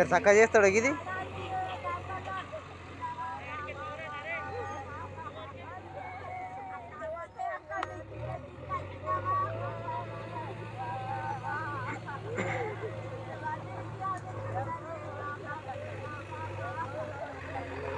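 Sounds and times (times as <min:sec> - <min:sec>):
diesel engine running: 0:00.0 - 0:17.9
people talking: 0:00.0 - 0:17.9.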